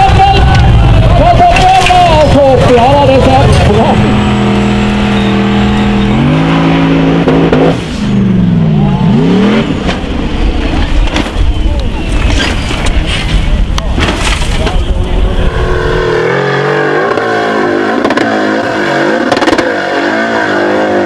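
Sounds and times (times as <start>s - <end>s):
buggy engines revving: 0.0s - 21.0s.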